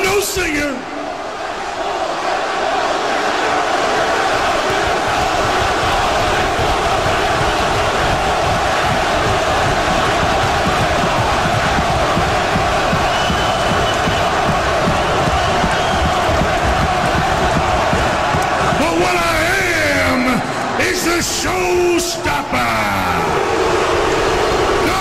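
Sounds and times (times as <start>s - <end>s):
arena crowd yelling: 0.0s - 25.0s.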